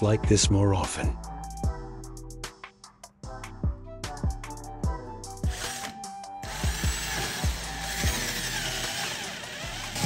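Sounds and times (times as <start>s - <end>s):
background music with beat: 0.0s - 10.0s
cordless drill motor whining: 5.5s - 10.0s.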